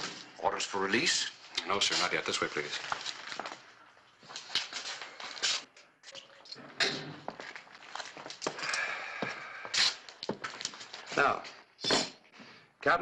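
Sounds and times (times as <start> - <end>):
footsteps: 1.8 - 12.1.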